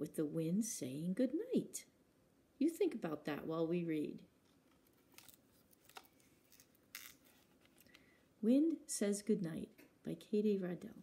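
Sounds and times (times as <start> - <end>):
book page turning: 4.4 - 8.0.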